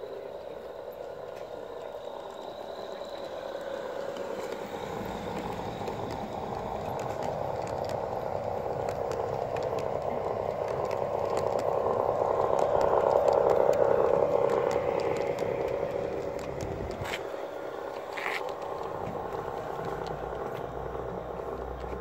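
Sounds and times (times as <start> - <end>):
model train coaches rolling: 0.0 - 22.0
light clicks on track: 0.1 - 22.0.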